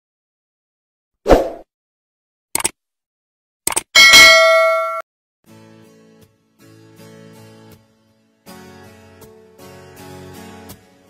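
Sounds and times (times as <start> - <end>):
bell ding: 4.0 - 5.0
faint guitar music: 5.5 - 11.0.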